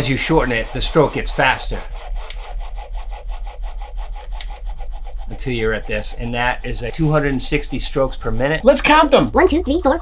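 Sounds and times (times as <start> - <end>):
fast mechanical stroking motor: 0.0 - 9.2.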